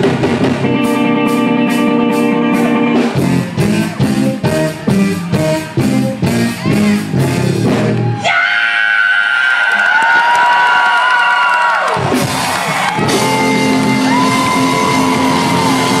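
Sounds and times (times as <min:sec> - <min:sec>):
live band playing: 0:00.0 - 0:08.2, 0:11.9 - 0:16.0
crowd yelling and whooping: 0:07.9 - 0:16.0.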